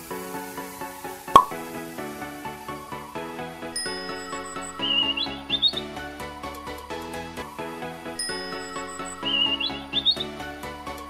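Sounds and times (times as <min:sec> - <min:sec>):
background music with steady beat: 0:00.0 - 0:11.0
bird tweet chirps: 0:04.0 - 0:05.9, 0:08.6 - 0:10.4.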